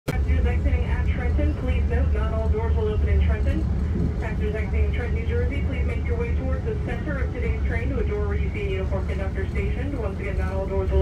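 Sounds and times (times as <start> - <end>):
public address announcement: 0.1 - 11.0
train rumble at speed: 0.1 - 11.0.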